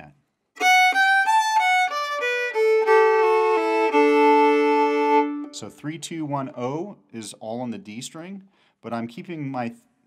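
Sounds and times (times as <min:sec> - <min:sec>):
fiddle bowed descending notes: 0:00.6 - 0:05.8.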